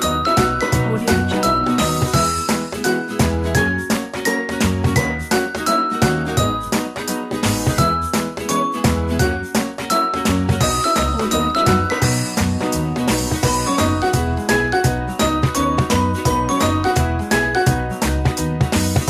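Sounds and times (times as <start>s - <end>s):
bell-like melody with beat: 0.0s - 19.0s.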